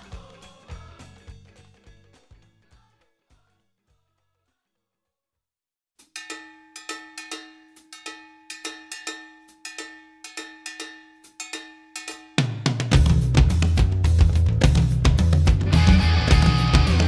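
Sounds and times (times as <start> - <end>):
cowbell-like metallic hits: 6.0 - 13.6
rock band playing: 12.9 - 17.0.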